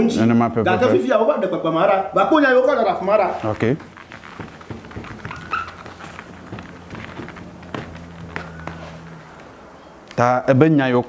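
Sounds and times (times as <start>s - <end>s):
marker scratching on whiteboard: 3.3s - 7.3s
marker squeak: 3.9s - 6.4s.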